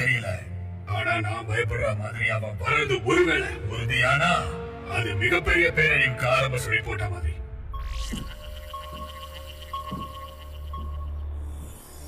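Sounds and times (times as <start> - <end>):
high beeping tone: 7.8 - 11.2.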